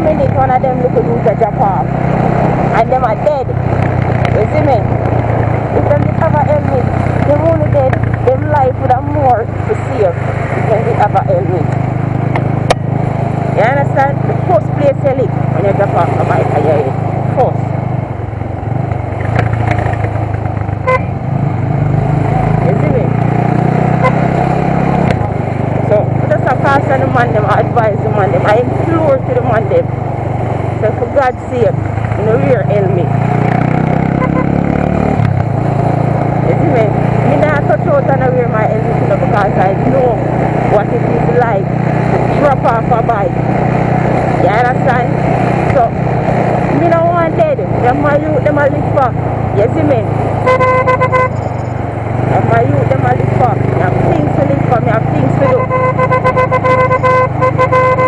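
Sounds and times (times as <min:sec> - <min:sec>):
motorcycle engine running: 0:00.0 - 0:58.0.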